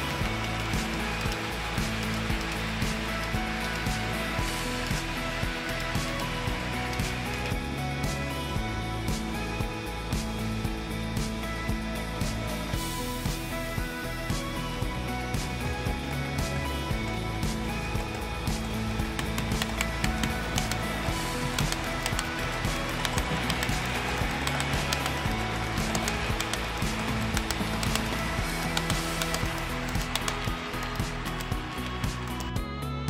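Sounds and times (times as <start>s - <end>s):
background guitar music: 0.0s - 33.0s.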